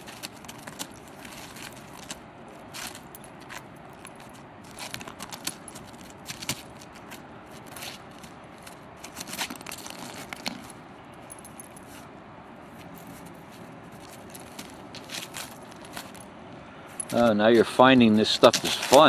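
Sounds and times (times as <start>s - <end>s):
dog digging in crusted snow: 0.0s - 10.4s, 17.0s - 19.0s.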